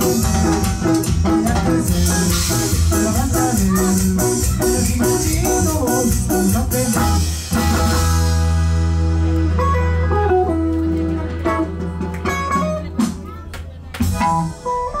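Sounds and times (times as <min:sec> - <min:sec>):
plucked guitar notes: 0:00.0 - 0:15.0.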